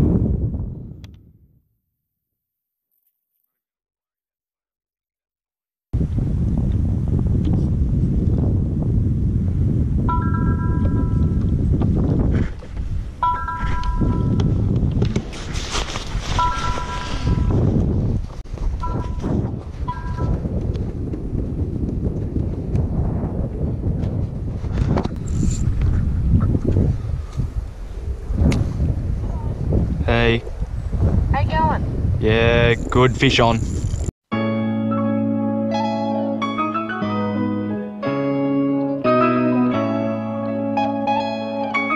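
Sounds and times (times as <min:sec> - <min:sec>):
wind rumbling on microphone: 0:00.0 - 0:01.6, 0:06.0 - 0:34.1
phone ringtone: 0:10.1 - 0:11.4, 0:13.2 - 0:14.6, 0:16.4 - 0:17.6, 0:18.8 - 0:20.4
rustle: 0:15.2 - 0:17.3.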